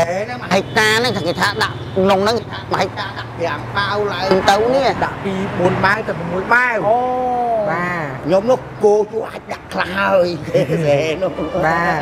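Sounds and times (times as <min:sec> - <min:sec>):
man's whiny drawn-out vowel: 0:00.0 - 0:04.0, 0:11.1 - 0:12.0.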